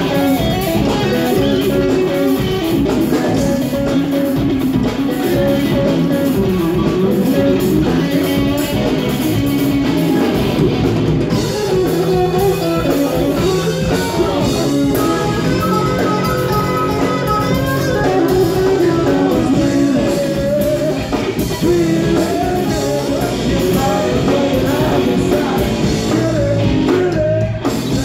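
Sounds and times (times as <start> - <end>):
live rock band playing: 0.0 - 28.0.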